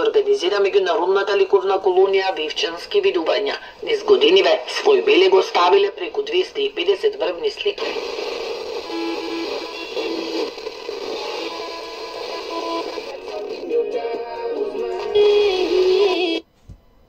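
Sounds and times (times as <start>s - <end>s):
radio music with singing: 0.0s - 16.4s.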